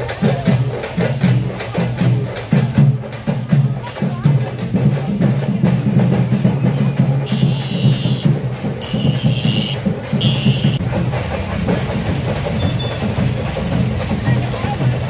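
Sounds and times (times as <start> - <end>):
dense drumming: 0.0 - 15.0
high held tone: 7.3 - 10.8.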